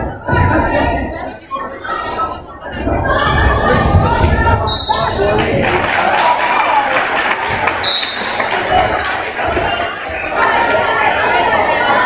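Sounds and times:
echoing crowd chatter: 0:00.0 - 0:12.0
referee whistle blasts: 0:04.7 - 0:05.1, 0:07.8 - 0:08.4.

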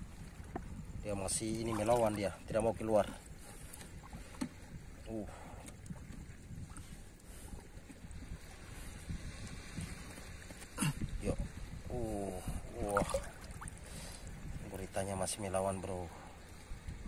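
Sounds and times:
seawater sloshing and splashing: 0:00.0 - 0:11.7, 0:12.5 - 0:15.1
sharp splash: 0:12.8 - 0:13.7.

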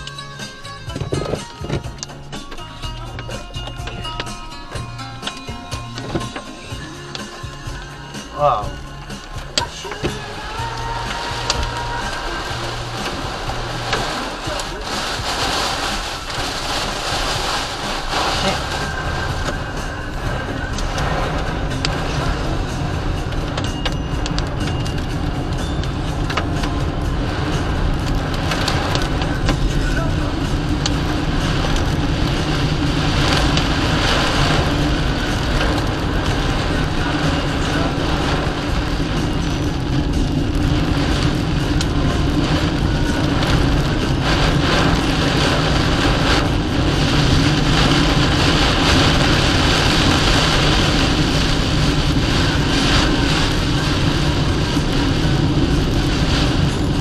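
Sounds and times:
car engine and road noise: 0:00.0 - 0:57.0
windscreen wipers: 0:00.0 - 0:57.0
heavy rain on windscreen: 0:08.3 - 0:57.0.

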